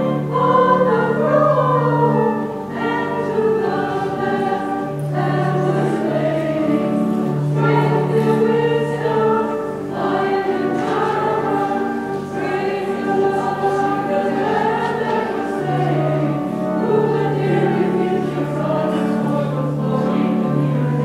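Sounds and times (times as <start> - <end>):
choir singing a hymn: 0.0 - 21.0
low accompanying notes: 0.0 - 21.0.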